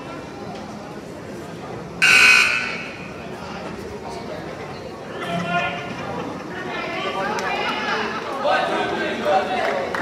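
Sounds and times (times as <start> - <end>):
scoreboard horn buzzing: 2.0 - 3.1.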